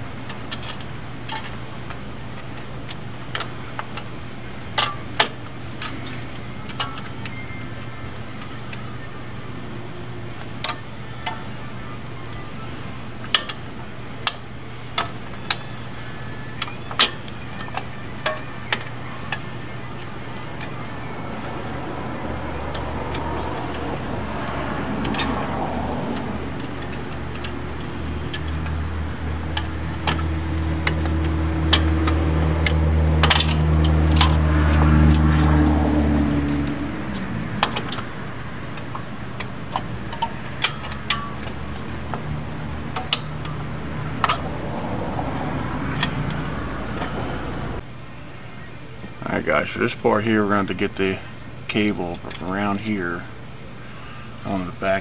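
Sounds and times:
low engine drone: 0:00.0 - 0:55.0
small metal parts clicking: 0:29.5 - 0:35.8.

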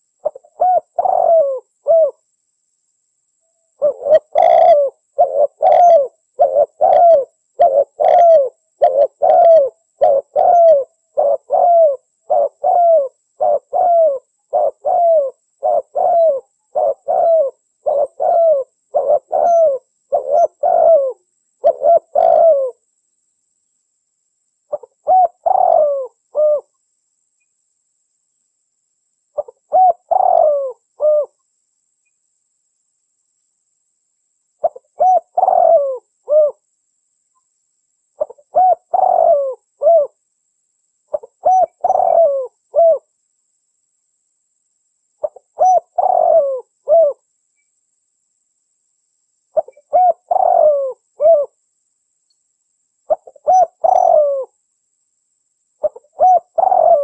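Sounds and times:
dove cooing: 0:00.0 - 0:02.2, 0:03.8 - 0:22.8, 0:24.7 - 0:26.7, 0:29.4 - 0:31.4, 0:34.6 - 0:36.6, 0:38.2 - 0:40.2, 0:41.1 - 0:43.1, 0:45.2 - 0:47.2, 0:49.6 - 0:51.6, 0:53.1 - 0:54.6, 0:55.8 - 0:57.0.

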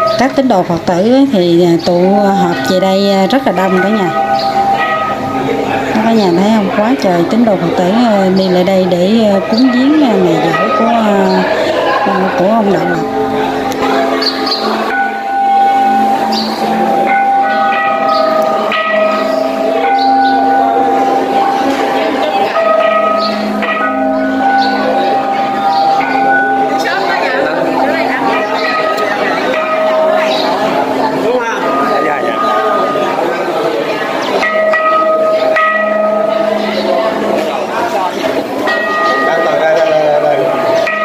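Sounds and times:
bells ringing: 0:00.0 - 0:41.0
crowd chatter: 0:00.0 - 0:41.0.

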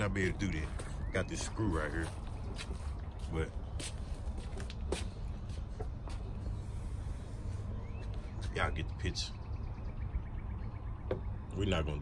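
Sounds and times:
steady low rumble: 0:01.8 - 0:12.0.

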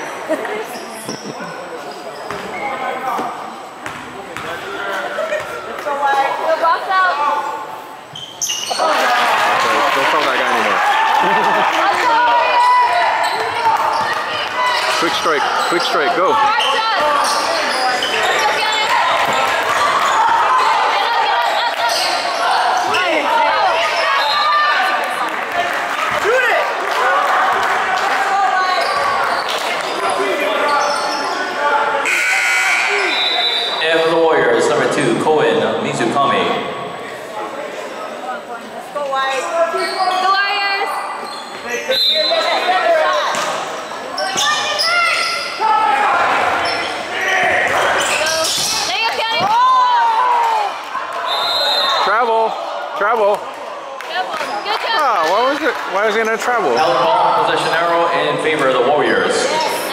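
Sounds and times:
crowd and players shouting: 0:04.4 - 0:38.2, 0:39.2 - 0:59.9
referee whistle: 0:32.0 - 0:33.8, 0:41.9 - 0:42.6, 0:51.3 - 0:52.2.

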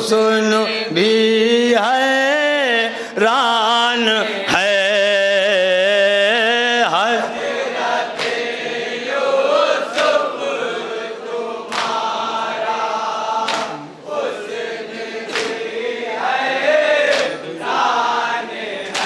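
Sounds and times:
men and boys chanting through a pa: 0:06.0 - 0:19.0.

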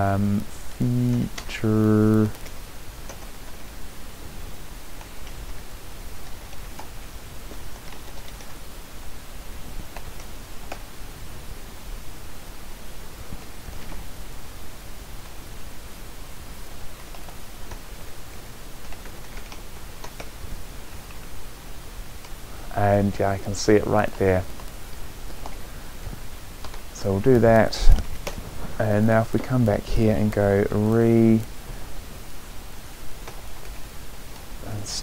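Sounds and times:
steady hiss: 0:00.0 - 0:35.0
computer keyboard keystrokes: 0:07.5 - 0:08.6, 0:18.8 - 0:20.4.

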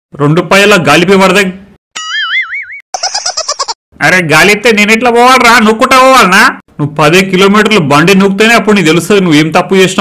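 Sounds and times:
cartoon wobbling boing: 0:02.0 - 0:02.8.

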